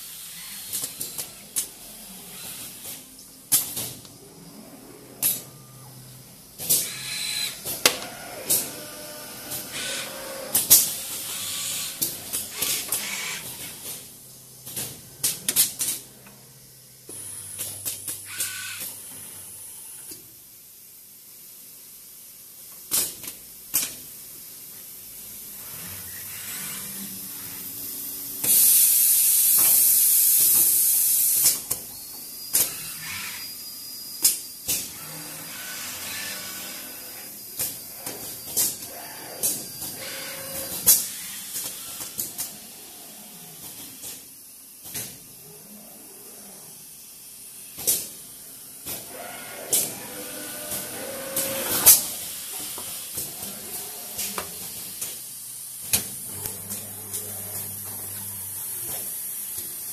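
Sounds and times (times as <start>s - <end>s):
faint motor hum: 0.0s - 20.2s, 48.1s - 59.9s
pneumatic valve clicks and hisses: 0.1s - 1.7s, 28.4s - 33.0s, 34.1s - 34.9s, 40.6s - 42.6s, 43.6s - 45.2s, 47.6s - 48.2s.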